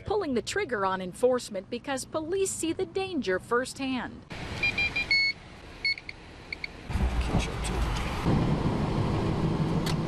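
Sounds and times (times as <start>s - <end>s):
engine hum: 0.0s - 10.0s
short electronic beeps: 4.6s - 6.7s.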